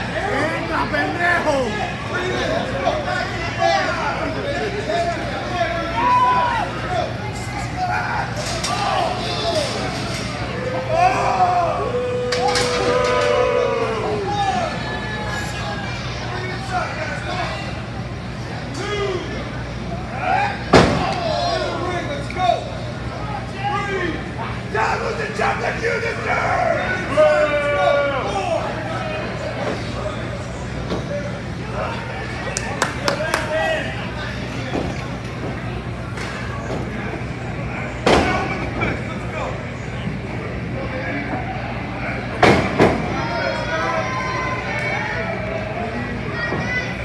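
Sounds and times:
crowd chatter: 0.0 - 47.0
spectators shouting: 5.6 - 17.0.

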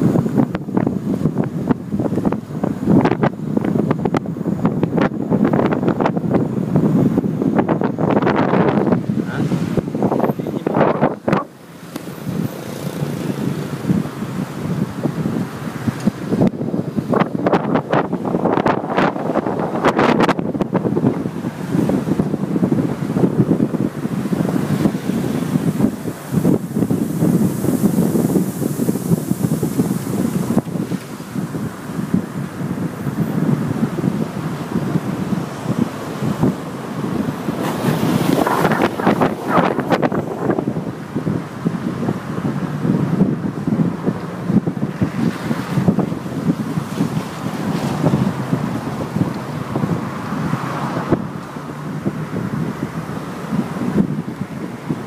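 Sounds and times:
car driving on road: 0.0 - 55.0
wind buffeting microphone: 0.0 - 55.0.

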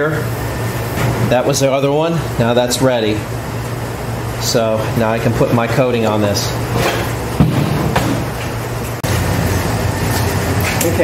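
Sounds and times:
ventilation humming: 0.0 - 11.0
knock: 7.4 - 8.2.

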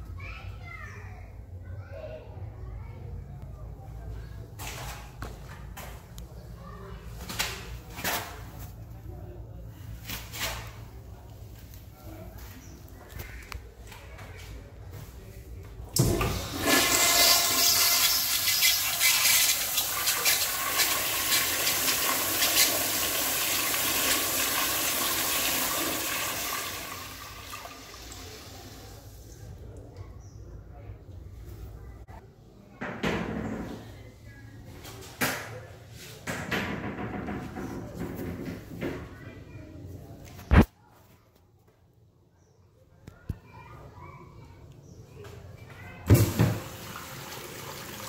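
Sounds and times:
children chattering and calling: 0.0 - 4.6, 6.2 - 7.2, 11.0 - 15.6, 37.6 - 40.4, 42.4 - 46.4
toilet flushing: 16.0 - 29.2, 46.1 - 48.0.

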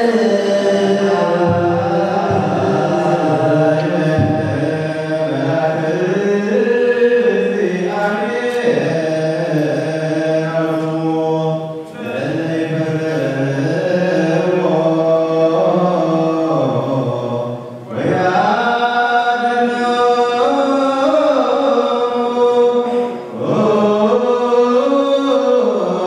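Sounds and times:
men chanting in unison: 0.0 - 26.0.

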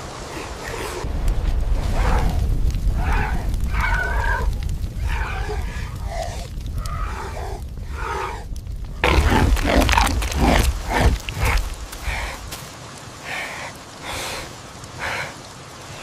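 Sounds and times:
steady low rumble: 1.0 - 12.5
hyenas growling and grunting: 3.0 - 12.3.

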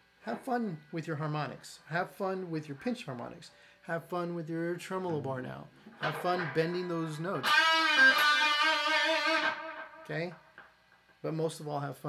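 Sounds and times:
electric guitar note with vibrato: 6.0 - 10.4.

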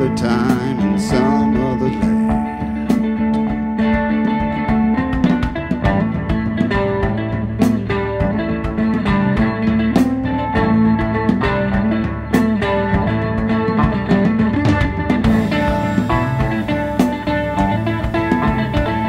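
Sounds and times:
drum kit: 0.0 - 19.0
electric bass: 0.0 - 19.0
mandolin picking a melody: 0.0 - 19.0.

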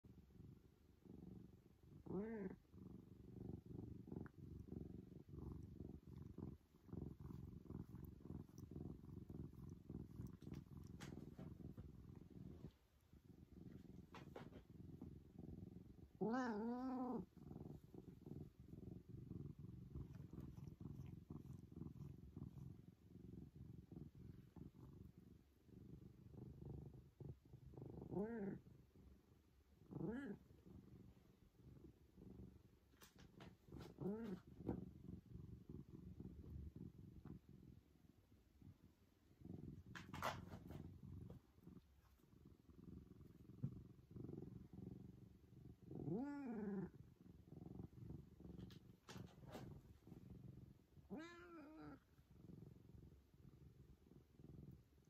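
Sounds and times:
cat purring: 0.0 - 55.0
cat meowing: 16.2 - 17.2, 51.1 - 52.0.

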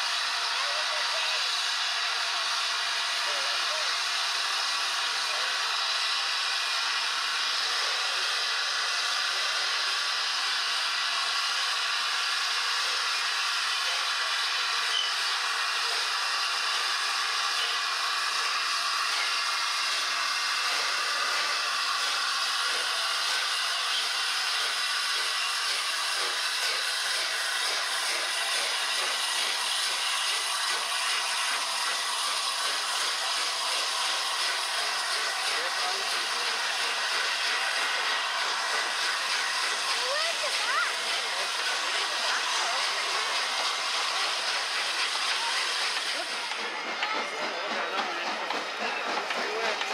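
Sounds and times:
steam locomotive hissing steam: 0.0 - 49.9.

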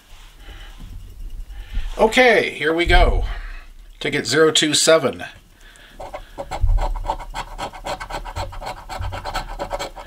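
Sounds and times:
coin scratching lottery ticket: 6.0 - 10.0.

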